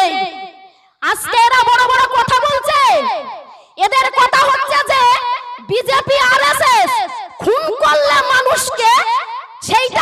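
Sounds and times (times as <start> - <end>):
woman giving a speech: 0.0 - 10.0.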